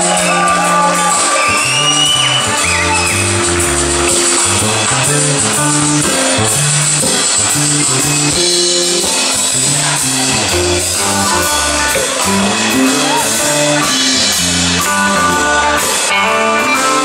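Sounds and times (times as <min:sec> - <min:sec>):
bent guitar notes: 0:00.0 - 0:17.0
blues band playing: 0:00.0 - 0:17.0.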